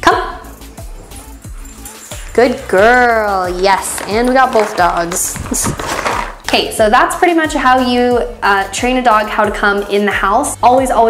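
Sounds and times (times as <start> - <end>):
background music with a beat: 0.0 - 11.0.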